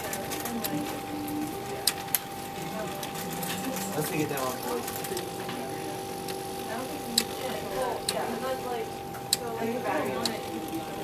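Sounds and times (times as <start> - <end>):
sharp machine clicks: 6.2 - 8.4.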